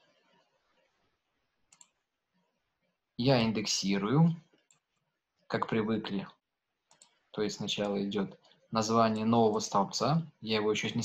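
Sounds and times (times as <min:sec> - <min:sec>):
computer mouse clicks: 0:01.7 - 0:02.0, 0:04.5 - 0:05.1, 0:06.8 - 0:07.2.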